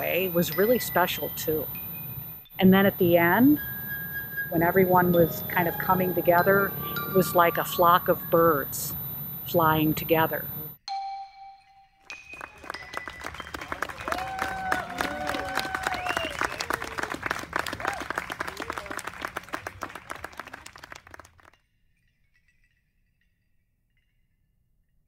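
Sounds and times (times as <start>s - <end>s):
audience clapping: 12.0s - 21.6s.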